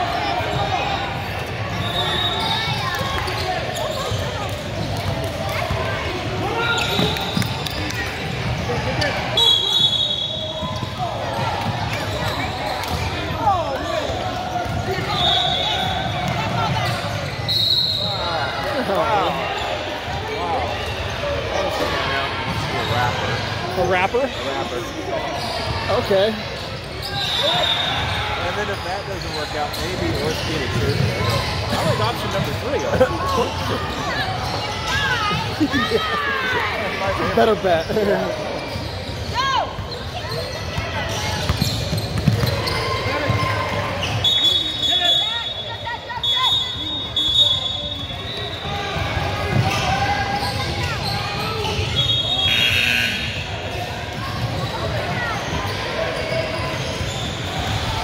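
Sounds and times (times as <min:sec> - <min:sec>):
echoing crowd voices: 0:00.0 - 0:58.0
basketball bouncing: 0:41.4 - 0:43.4.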